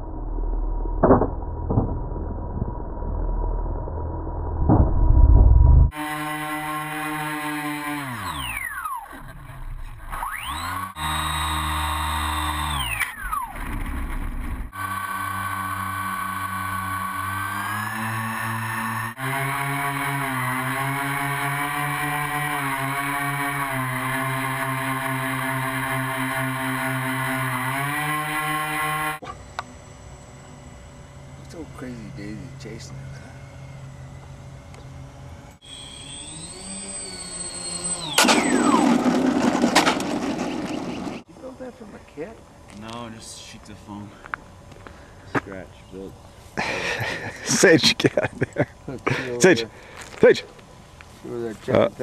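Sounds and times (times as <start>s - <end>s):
model plane motor whining: 5.9s - 41.2s.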